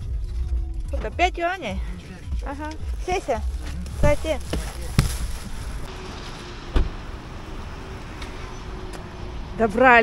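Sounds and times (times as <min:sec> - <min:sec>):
car door shutting: 0:06.7 - 0:07.0.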